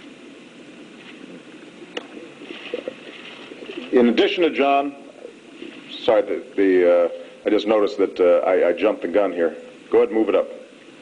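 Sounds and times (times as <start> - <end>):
faint low murmur: 0.0 - 11.0.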